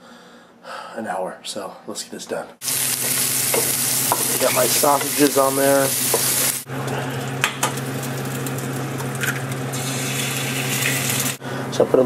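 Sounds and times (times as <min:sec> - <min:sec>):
sausages sizzling in a frying pan: 0:02.6 - 0:11.4.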